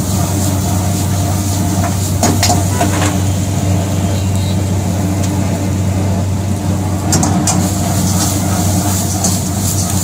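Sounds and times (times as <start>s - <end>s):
gas burner rushing: 0.0s - 10.0s.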